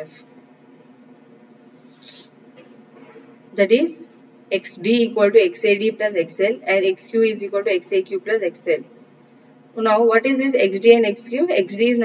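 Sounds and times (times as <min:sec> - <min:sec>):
soft hiss: 0:00.0 - 0:04.6
faint background hum: 0:00.0 - 0:12.0.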